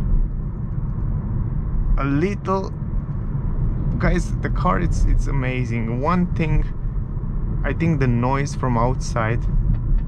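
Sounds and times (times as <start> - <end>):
road and tyre rumble in car: 0.0 - 10.0.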